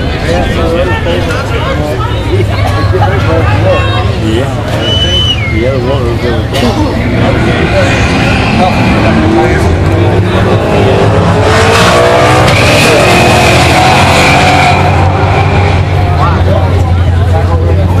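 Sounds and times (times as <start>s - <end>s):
race car engines accelerating: 0.0s - 18.0s
spectators' voices: 0.0s - 18.0s.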